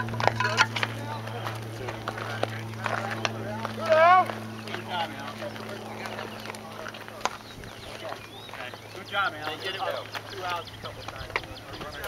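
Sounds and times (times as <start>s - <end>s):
people talking and calling out: 0.0s - 12.0s
steady low hum: 0.0s - 12.0s
person shouting: 3.8s - 4.3s.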